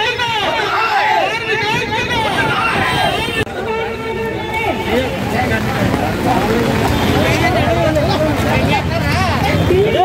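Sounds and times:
crowd shouting slogans: 0.0s - 5.0s.

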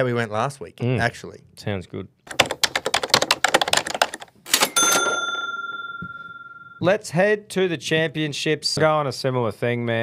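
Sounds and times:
typewriter bell ding: 4.5s - 6.8s.

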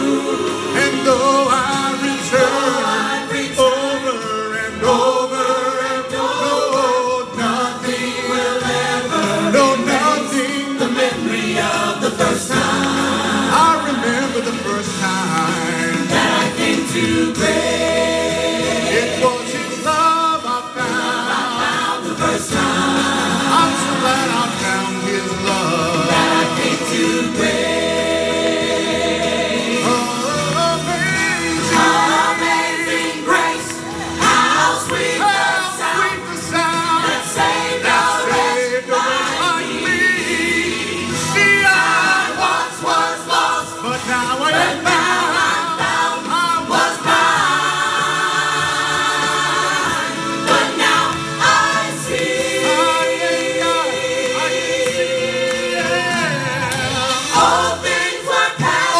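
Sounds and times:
gospel choir singing: 0.0s - 58.9s.

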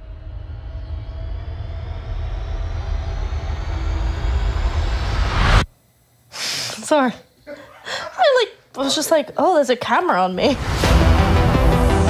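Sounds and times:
deep rumbling drone: 0.0s - 5.7s.

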